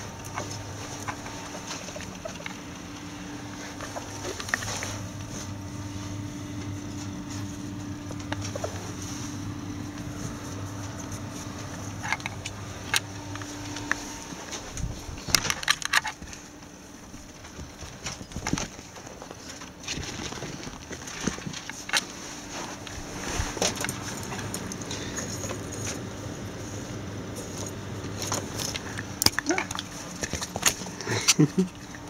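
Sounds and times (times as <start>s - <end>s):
low electrical hum: 0.0s - 32.0s.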